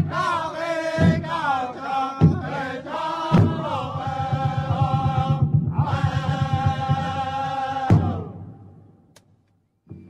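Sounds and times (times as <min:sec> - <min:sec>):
fast steady drumbeat: 0:00.0 - 0:08.5
group singing in chorus: 0:00.0 - 0:08.8
heavy hand drum strokes: 0:03.3 - 0:08.3.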